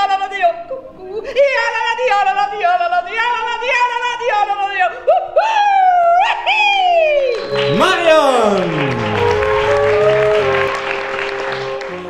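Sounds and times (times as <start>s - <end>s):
woman yodeling: 5.0s - 8.8s.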